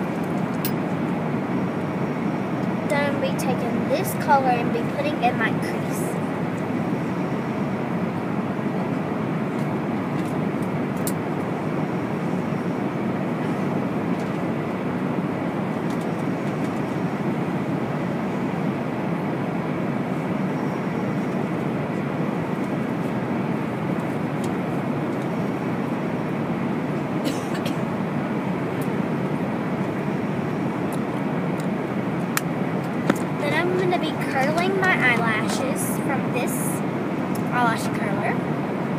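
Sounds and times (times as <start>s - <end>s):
jet engine and airflow rush: 0.0s - 38.9s.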